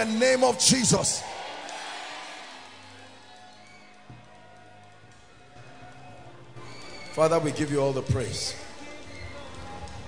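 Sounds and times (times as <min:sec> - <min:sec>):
voice echoing in hall: 0:00.0 - 0:01.4.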